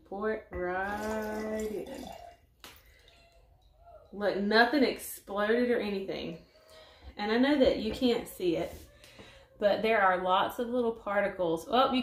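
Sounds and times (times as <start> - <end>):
liquid pouring and dripping: 0.7 - 4.2.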